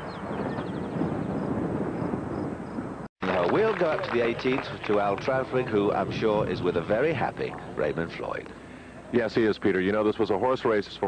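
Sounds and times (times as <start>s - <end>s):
low outdoor rumble: 1.8s - 11.0s.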